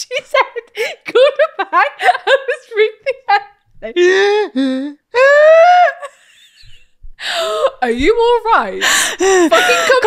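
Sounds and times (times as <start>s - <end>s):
woman shrieking with laughter: 5.2s - 6.6s.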